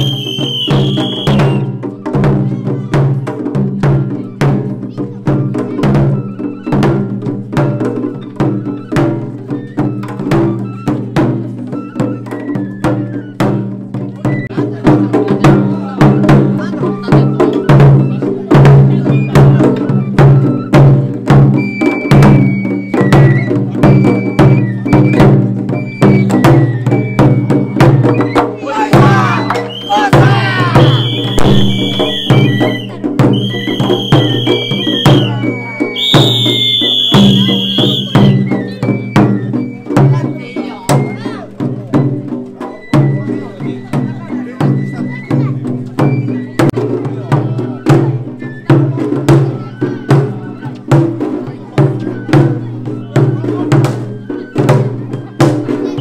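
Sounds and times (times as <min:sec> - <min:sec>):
long high calls: 0:00.0 - 0:01.7, 0:21.6 - 0:40.0
taiko drum beating: 0:00.0 - 0:56.0.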